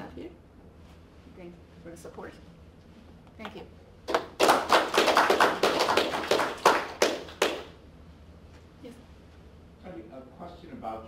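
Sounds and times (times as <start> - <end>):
audience applauding: 4.1 - 7.7.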